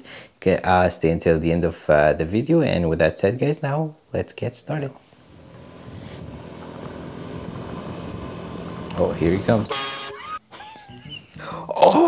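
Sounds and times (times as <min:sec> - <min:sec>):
road traffic: 0:05.1 - 0:10.2
motor scooter engines running: 0:05.3 - 0:10.1.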